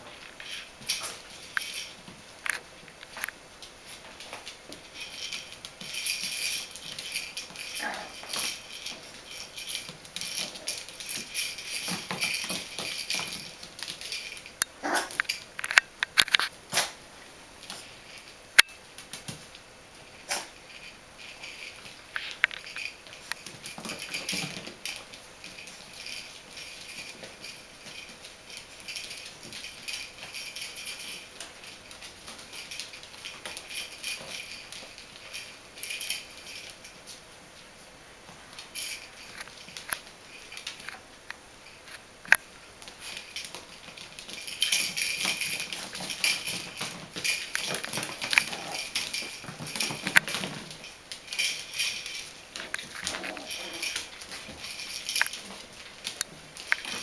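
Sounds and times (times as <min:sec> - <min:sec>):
puppies scuffling: 0:00.0 - 0:57.0
puppy claws clicking on hard floor: 0:00.1 - 0:17.0, 0:17.6 - 0:37.2, 0:38.5 - 0:57.0.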